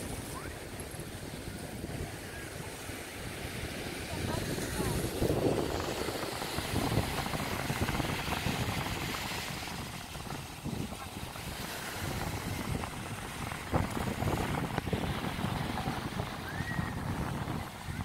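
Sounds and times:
surf washing: 0.0s - 18.0s
wind rumbling on microphone: 0.0s - 18.0s.

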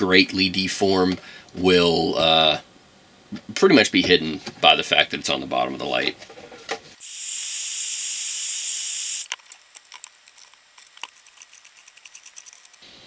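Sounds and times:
heat gun blowing hiss: 7.0s - 9.3s.

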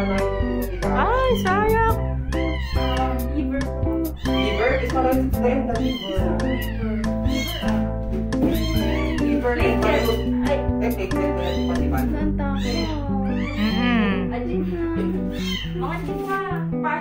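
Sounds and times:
background music: 0.0s - 17.0s
puppy whining: 12.8s - 14.3s.

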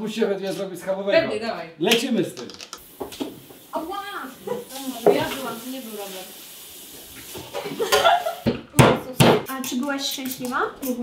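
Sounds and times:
steady hiss: 2.8s - 8.6s
people talking indistinctly: 3.7s - 6.4s, 8.6s - 11.0s.

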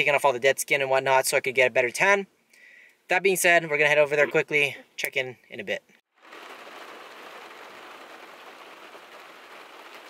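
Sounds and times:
heavy rain on car roof: 6.1s - 10.0s.

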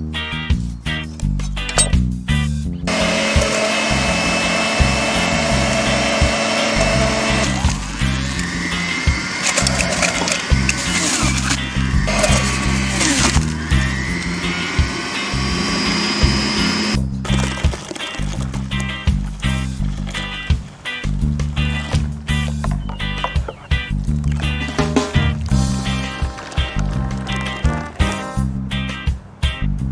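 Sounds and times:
electric juicer running: 2.9s - 17.8s, 25.9s - 27.7s
background music with beat: 18.8s - 29.9s.

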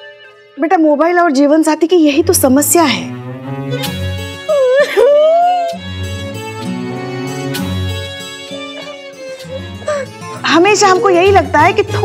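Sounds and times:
background music with low strings: 0.0s - 12.0s.

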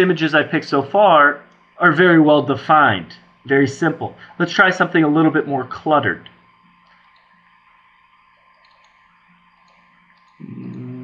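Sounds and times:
computer mouse clicks: 6.8s - 7.4s, 8.4s - 11.0s
man humming hmm: 10.4s - 11.0s.

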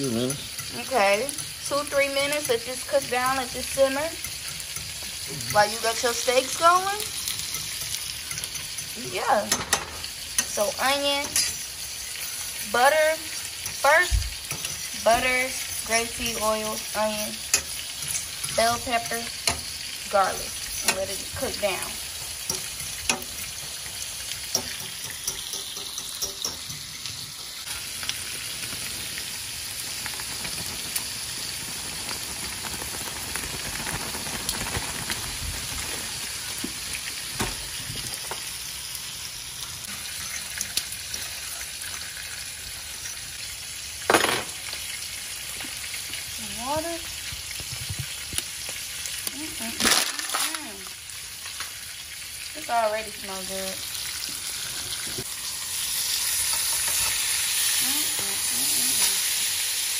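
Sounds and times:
vegetables sizzling in a pan: 0.0s - 59.9s
fork scraping and clicking on pan: 7.2s - 9.0s, 11.2s - 11.6s, 14.4s - 14.9s, 17.4s - 18.6s, 24.4s - 27.4s.

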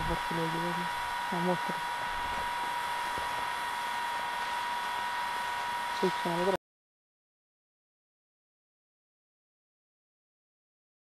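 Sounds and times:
hair dryer running: 0.0s - 6.6s.

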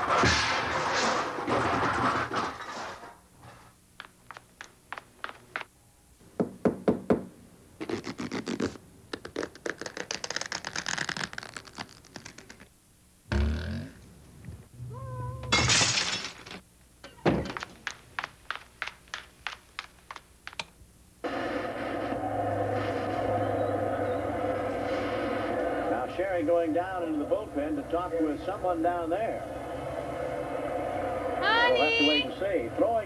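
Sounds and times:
cat meowing: 14.9s - 15.5s
evenly spaced ticks: 17.8s - 20.7s
hissing burst: 21.2s - 32.0s
steady drone with low hum: 21.2s - 33.0s.

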